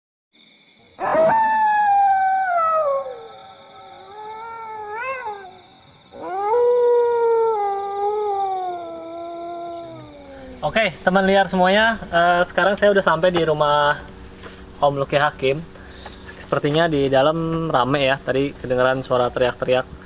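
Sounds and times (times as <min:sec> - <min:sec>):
dog howling: 0:01.0 - 0:10.8.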